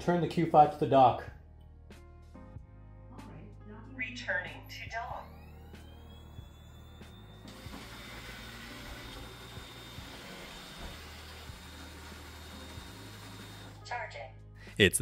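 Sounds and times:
robot vacuum motor whirring: 0:05.2 - 0:13.8.

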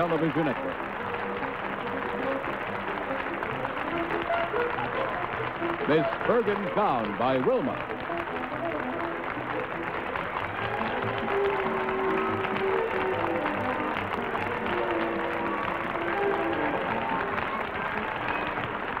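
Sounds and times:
studio audience applause: 0:00.0 - 0:19.0
game show theme music: 0:04.4 - 0:18.0.

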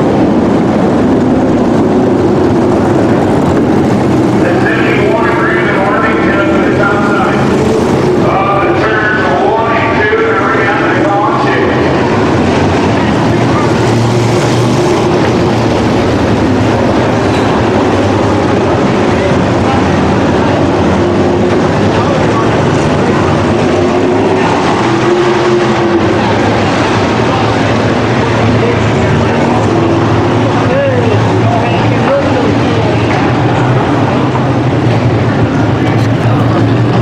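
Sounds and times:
race car engines roaring: 0:00.0 - 0:37.0.

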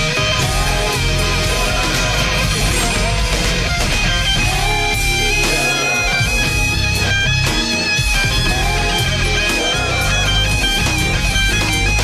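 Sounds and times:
bass line: 0:00.0 - 0:12.0
drums: 0:00.0 - 0:12.0
electric lead guitar: 0:00.0 - 0:12.0.

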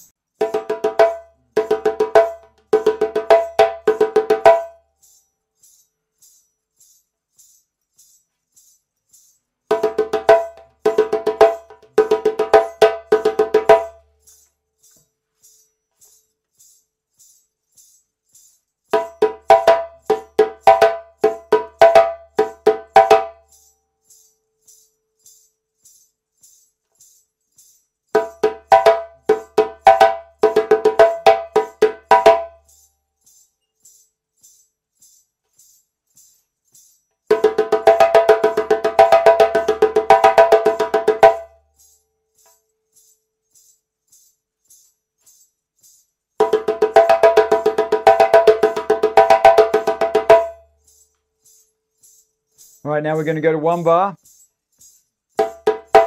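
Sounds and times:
ankle bells jingling: 0:00.0 - 0:56.0
djembe played by hand: 0:00.4 - 0:04.8, 0:09.7 - 0:14.0, 0:19.0 - 0:23.4, 0:28.2 - 0:32.6, 0:37.3 - 0:41.6, 0:46.4 - 0:50.6, 0:55.4 - 0:56.0.

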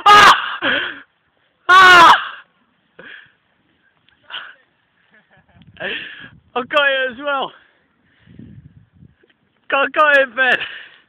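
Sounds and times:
person yelling: 0:00.0 - 0:00.4, 0:01.7 - 0:02.4.

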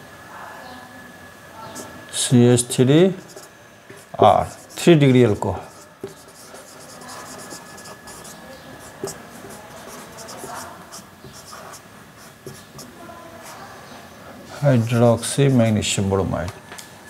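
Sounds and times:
marker pen writing on whiteboard: 0:03.2 - 0:13.7.

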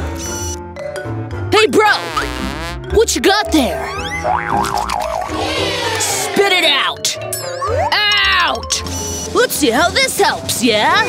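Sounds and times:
background music: 0:00.0 - 0:11.0
comic wobbling sound effect: 0:03.8 - 0:06.3.

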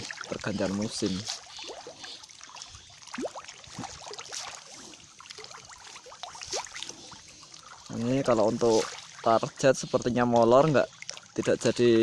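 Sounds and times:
fish splashing at water surface: 0:00.0 - 0:09.9.

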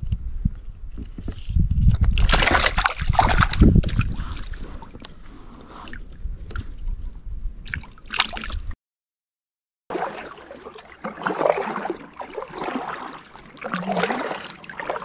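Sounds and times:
fish splashing at water surface: 0:02.2 - 0:04.6, 0:09.9 - 0:15.0.

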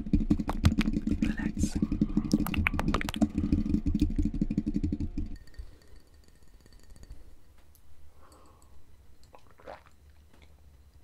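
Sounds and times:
crackly tapping on microphone: 0:00.0 - 0:05.4
mouth sounds: 0:00.5 - 0:03.7.

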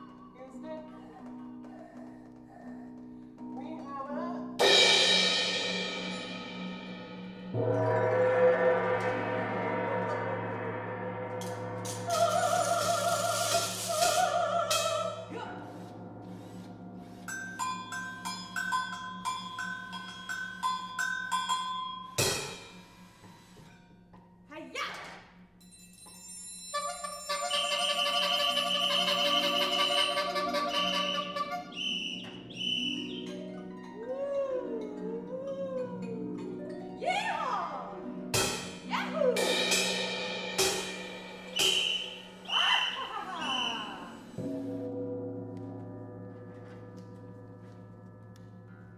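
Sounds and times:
mallet percussion high notes: 0:04.4 - 0:15.5, 0:16.4 - 0:22.8, 0:25.6 - 0:48.9
sliding bending pitches: 0:26.8 - 0:34.4, 0:37.7 - 0:48.9.

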